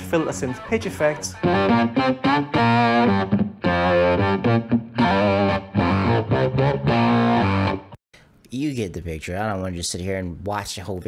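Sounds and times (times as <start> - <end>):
distorted electric guitar: 1.3 - 8.0.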